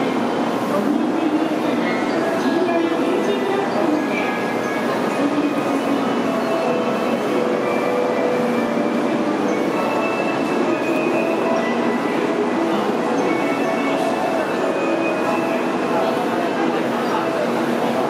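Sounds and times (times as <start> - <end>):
crowd walking and talking: 0.0 - 18.0.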